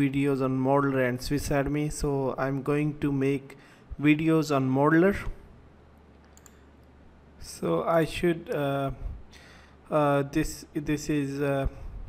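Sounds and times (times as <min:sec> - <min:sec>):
person speaking: 0:00.0 - 0:05.5, 0:07.4 - 0:09.3
low steady hum: 0:00.0 - 0:12.0
computer mouse clicks: 0:06.1 - 0:06.9.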